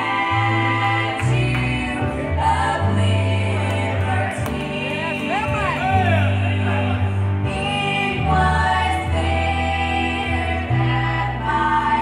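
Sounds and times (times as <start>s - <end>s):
long held bass notes: 0.0s - 12.0s
women's vocal group singing gospel: 0.0s - 12.0s.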